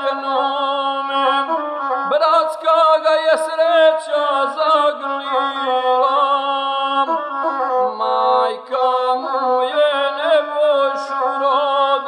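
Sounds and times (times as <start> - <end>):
bowed folk fiddle melody: 0.0 - 12.0.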